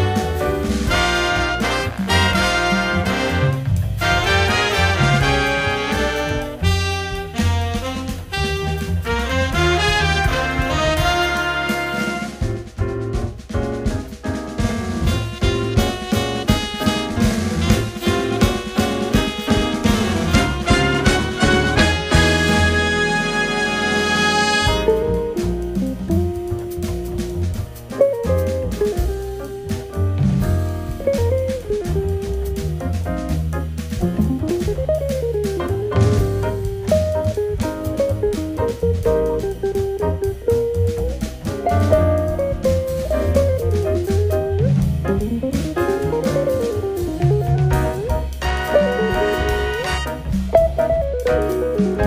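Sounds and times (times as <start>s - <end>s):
big band horn chord: 0.0s - 12.7s, 14.9s - 27.9s, 47.0s - 51.5s
drums: 0.0s - 52.0s
walking bass: 0.0s - 52.0s.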